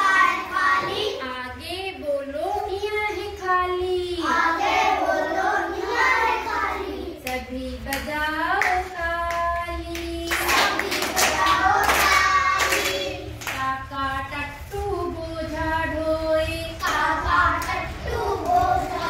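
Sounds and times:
children singing together: 0.0s - 1.3s, 4.2s - 7.3s, 10.3s - 13.9s, 15.5s - 19.0s
hand claps: 7.2s - 13.7s.

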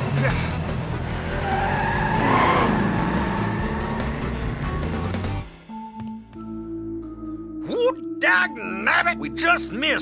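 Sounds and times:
cartoon cars revving away: 0.0s - 5.0s
tyres skidding: 0.0s - 5.8s.

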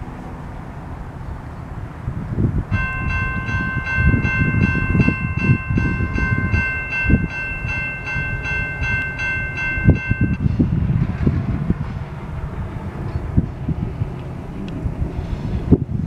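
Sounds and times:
low uneven rumble: 0.0s - 16.0s
railroad crossing bell ringing: 2.7s - 10.7s.

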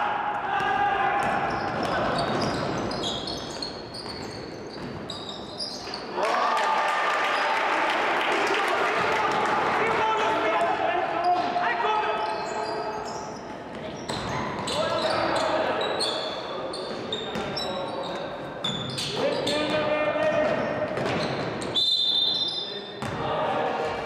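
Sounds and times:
sneaker squeaks: 1.2s - 6.1s, 11.2s - 23.2s
players shouting: 6.2s - 12.6s
basketball bouncing: 20.4s - 21.6s.

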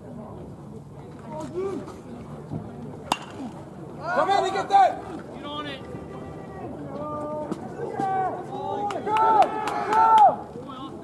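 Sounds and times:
bat hitting ball ping: 3.1s - 3.6s.

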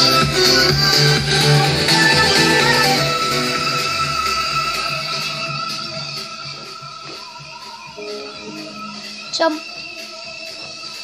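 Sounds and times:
guitar and strings music from television: 0.0s - 11.0s.

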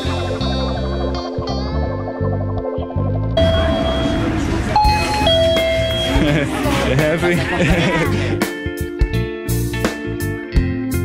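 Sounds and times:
electronic door chime: 3.4s - 6.4s
shop chatter: 3.4s - 8.4s.

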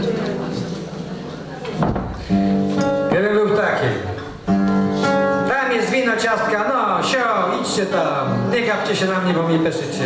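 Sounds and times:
acoustic guitar chord ringing: 2.2s - 8.6s
man's voice: 3.1s - 4.2s, 5.4s - 10.0s.

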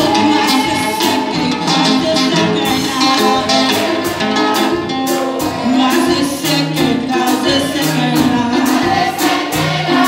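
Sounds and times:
drum kit beat: 0.0s - 10.0s
group singing gospel song: 0.0s - 10.0s.

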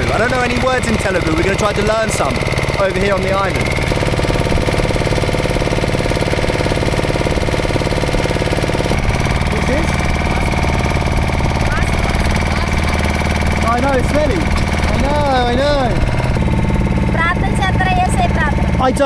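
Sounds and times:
boat engine thudding: 0.0s - 19.0s.

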